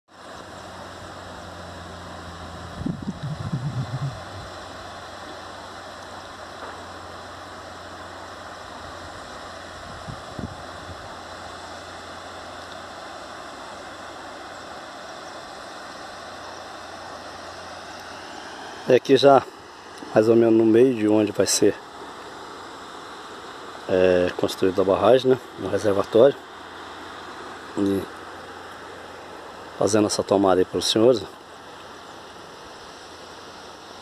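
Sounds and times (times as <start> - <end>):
distant waterfall over rocks: 0.1 - 34.0.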